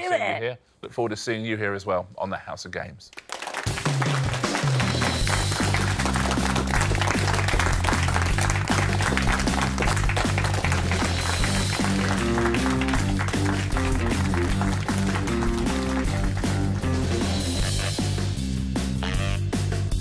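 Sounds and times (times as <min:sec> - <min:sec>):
theme music with steady beat: 0:03.6 - 0:20.0.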